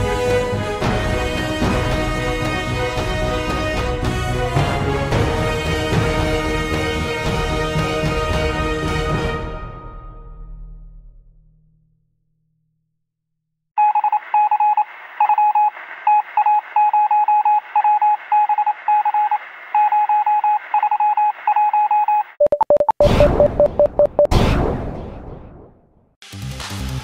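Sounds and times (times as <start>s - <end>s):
morse code beeps: 13.8s - 24.3s.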